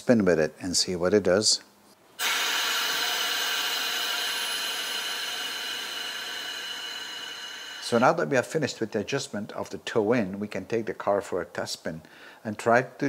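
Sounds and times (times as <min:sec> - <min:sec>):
steady hissing noise: 0:00.0 - 0:13.0
person speaking: 0:07.8 - 0:13.0.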